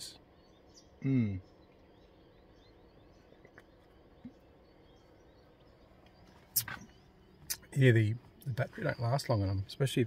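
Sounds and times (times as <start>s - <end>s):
faint bird chirps: 0.0s - 10.0s.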